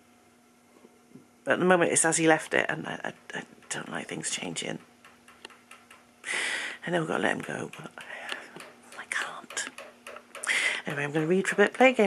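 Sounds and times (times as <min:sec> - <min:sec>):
faint clicks: 0:07.4 - 0:10.9.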